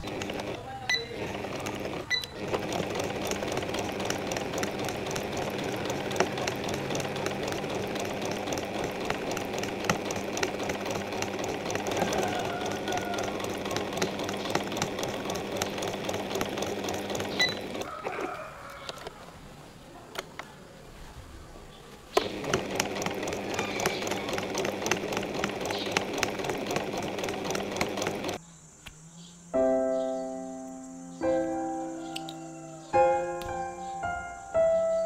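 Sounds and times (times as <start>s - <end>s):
sewing machine stitching: 0.0s - 17.9s, 22.1s - 28.4s.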